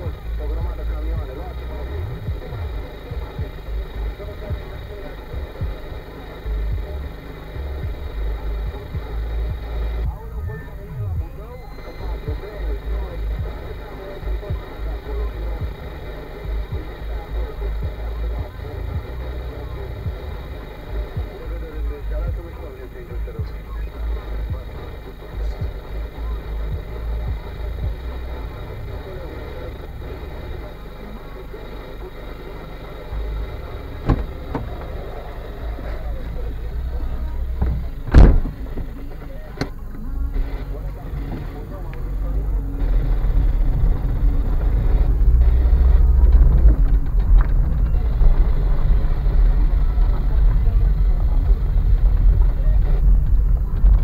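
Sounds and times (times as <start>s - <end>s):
car engine idling: 0.0s - 54.0s
quiet radio music: 0.0s - 54.0s
radio speech: 0.0s - 54.0s.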